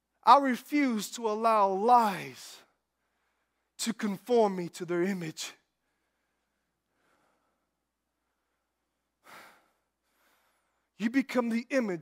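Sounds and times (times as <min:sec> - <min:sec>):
man breathing: 0:02.9 - 0:03.8, 0:05.7 - 0:11.0.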